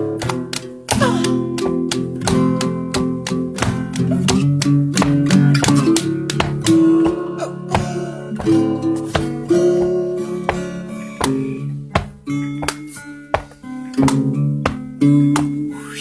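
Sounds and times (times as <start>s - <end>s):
acoustic guitar strumming chords: 0.0s - 16.0s.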